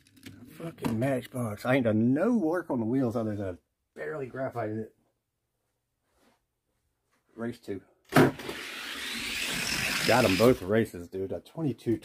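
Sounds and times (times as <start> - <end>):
toy car wheels rolling on track: 8.4 - 10.7.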